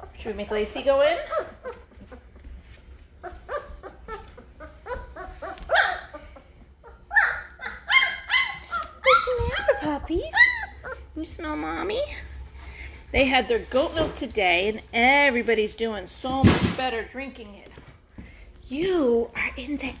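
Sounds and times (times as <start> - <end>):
puppies whining and yelping: 0.0 - 11.4.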